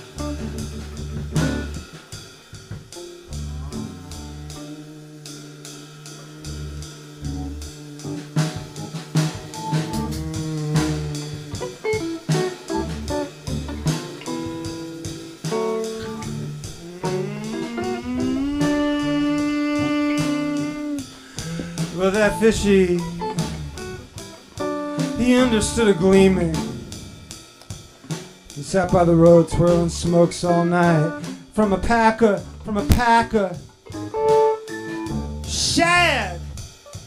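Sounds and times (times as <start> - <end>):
low bass notes: 0.0 - 2.0, 2.7 - 36.7
electric guitar: 0.0 - 2.1, 2.7 - 37.0
drum kit hits: 0.0 - 37.0.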